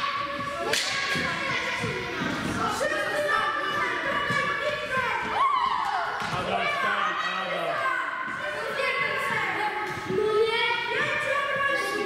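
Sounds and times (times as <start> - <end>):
children's voices echoing in hall: 0.0 - 12.0.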